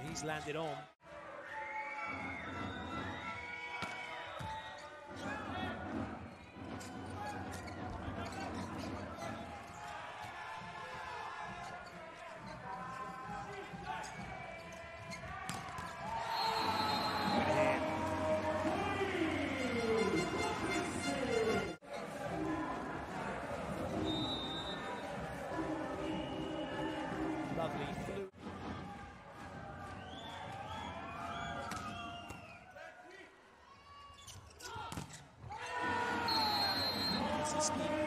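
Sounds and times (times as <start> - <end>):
crowd noise: 0.0 - 38.0
crowd cheering and shouting: 0.5 - 34.2, 35.5 - 38.0.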